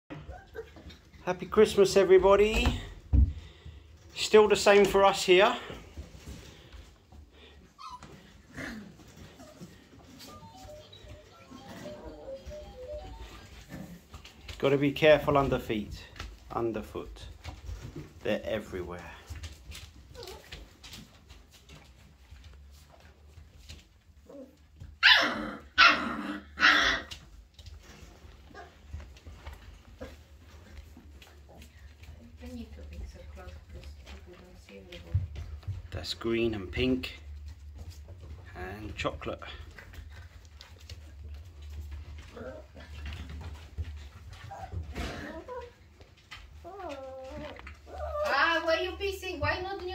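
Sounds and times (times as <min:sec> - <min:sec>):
puppy whimpering: 0:00.1 - 0:01.1, 0:07.7 - 0:14.0, 0:20.1 - 0:20.6, 0:24.2 - 0:27.2, 0:42.2 - 0:43.0, 0:44.4 - 0:48.7.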